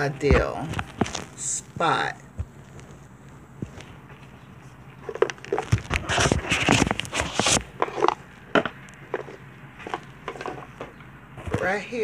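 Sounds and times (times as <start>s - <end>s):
camera handling rustle: 2.4s - 11.0s.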